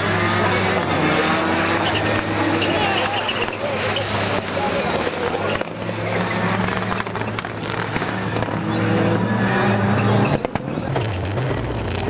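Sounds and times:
racing car engines: 0.0s - 12.0s
exhaust cracks: 10.5s - 12.0s.

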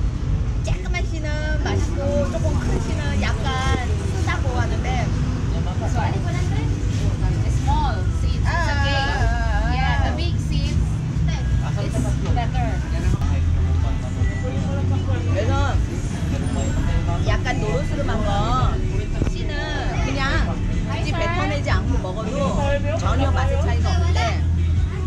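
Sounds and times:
low rumble: 0.0s - 25.0s
women talking: 0.7s - 13.2s, 17.3s - 24.5s.

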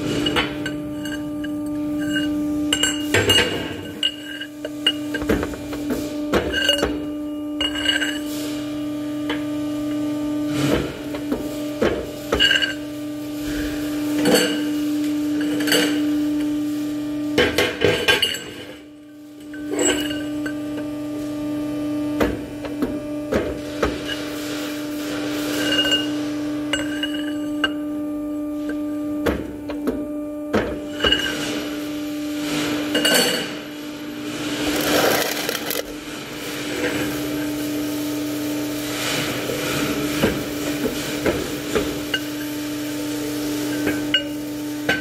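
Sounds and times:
steady machine hum: 0.0s - 45.0s.

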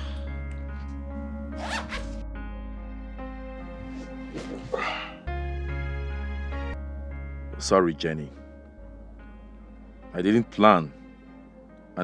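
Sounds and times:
soft background music: 0.0s - 12.0s
zipper rasp: 1.6s - 2.2s.

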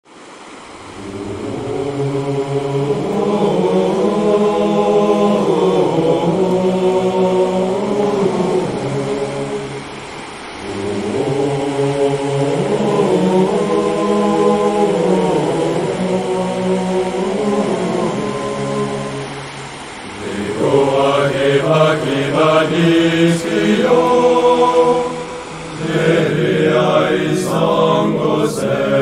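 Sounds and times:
voices chanting in held chords: 0.1s - 29.0s.

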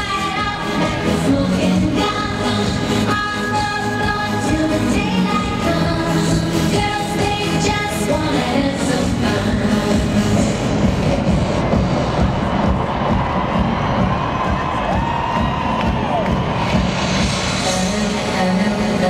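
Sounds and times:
live dance-pop music: 0.0s - 19.0s
crowd cheering: 11.9s - 17.6s.

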